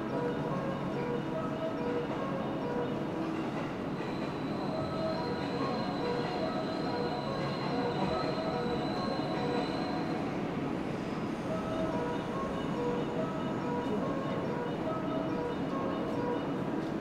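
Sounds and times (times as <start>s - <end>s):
electric train rumble: 0.0s - 17.0s
high wheel squeal: 4.0s - 10.4s.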